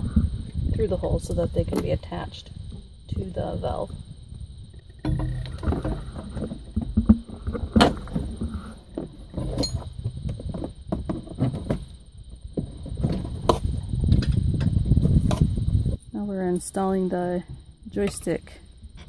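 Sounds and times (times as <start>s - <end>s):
cables knocking and rattling: 4.7s - 15.4s.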